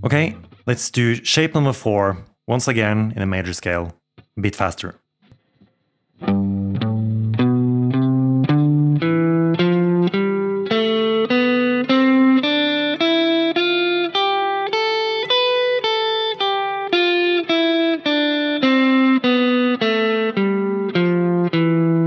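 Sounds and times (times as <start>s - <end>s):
electric guitar playing a scale: 5.6s - 22.0s.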